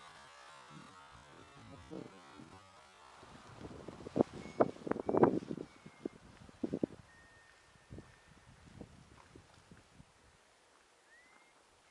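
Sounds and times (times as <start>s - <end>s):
wind buffeting microphone: 3.2s - 7.1s, 7.7s - 10.4s.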